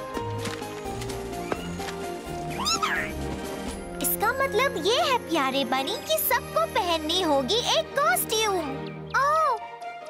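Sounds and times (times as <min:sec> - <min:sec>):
cartoon background music: 0:00.0 - 0:10.0
cartoon character squeal: 0:02.5 - 0:03.1.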